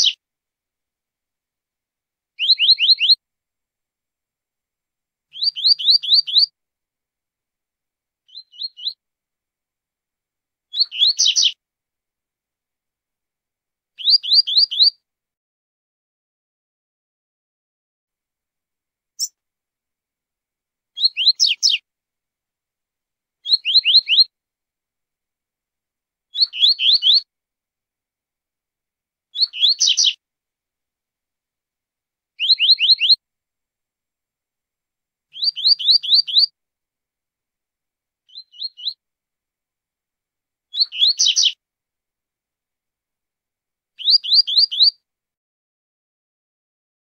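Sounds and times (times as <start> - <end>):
small bird singing high phrases: 0.0 - 0.2, 2.4 - 3.2, 5.3 - 6.5, 8.2 - 9.0, 10.7 - 11.6, 14.0 - 15.0, 19.2 - 19.4, 20.9 - 21.9, 23.4 - 24.3, 26.3 - 27.3, 29.3 - 30.2, 32.4 - 33.2, 35.3 - 36.6, 38.2 - 39.0, 40.7 - 41.6, 44.0 - 45.0.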